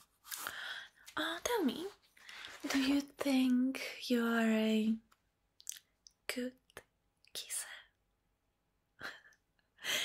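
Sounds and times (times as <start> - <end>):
woman whispering: 6.3 - 8.0.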